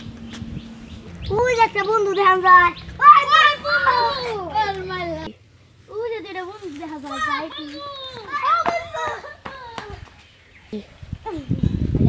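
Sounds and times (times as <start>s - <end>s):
children exclaiming excitedly: 1.3s - 5.3s, 5.9s - 10.2s.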